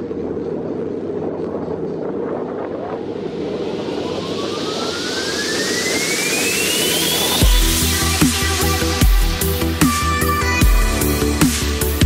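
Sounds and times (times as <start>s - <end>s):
road rumble: 0.0s - 10.6s
wind on microphone: 0.0s - 11.6s
whooshing riser with rising tone: 2.0s - 11.6s.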